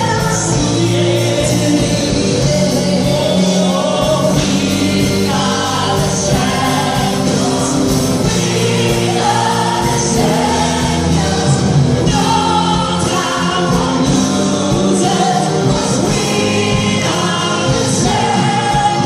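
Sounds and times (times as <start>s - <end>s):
choir singing: 0.0s - 19.0s
live rock band playing: 0.0s - 19.0s.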